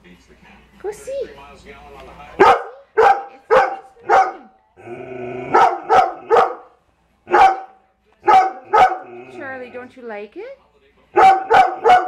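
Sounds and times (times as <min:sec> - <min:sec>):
dog barking: 0:02.4 - 0:04.5, 0:05.5 - 0:09.1, 0:11.1 - 0:12.0.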